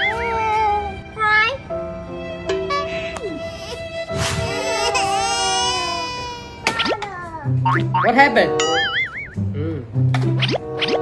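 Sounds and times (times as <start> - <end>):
background music: 0.0 - 11.0
quick whoosh: 4.1 - 4.7.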